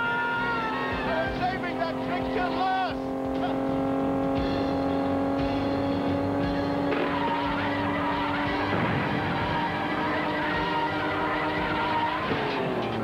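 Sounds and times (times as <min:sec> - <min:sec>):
car engine running: 0:00.0 - 0:13.0.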